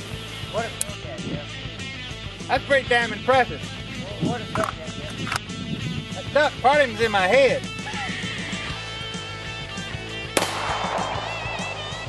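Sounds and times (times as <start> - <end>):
background music with beat: 0.0 - 12.0
handgun shot: 10.4 - 12.0.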